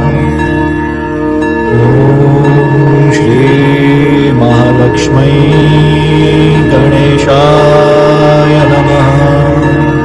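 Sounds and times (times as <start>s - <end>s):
chanting voice: 0.0s - 10.0s
sustained drone: 0.0s - 10.0s.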